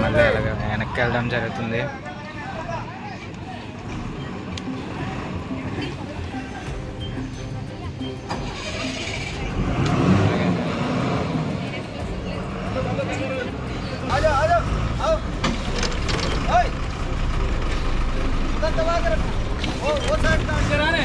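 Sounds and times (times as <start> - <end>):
diesel bus engine under load: 8.2 - 21.0.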